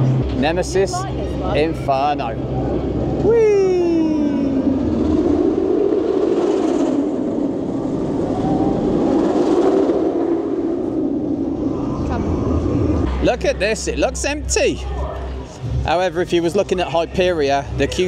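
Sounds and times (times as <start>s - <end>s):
roller coaster train rumbling roar: 0.0s - 18.0s.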